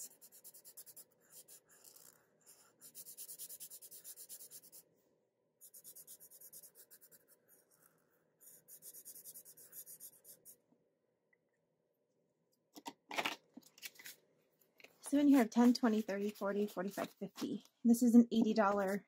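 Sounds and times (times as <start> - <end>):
marker scribbling on paper: 0.0 - 4.8, 5.6 - 10.6, 15.1 - 17.5.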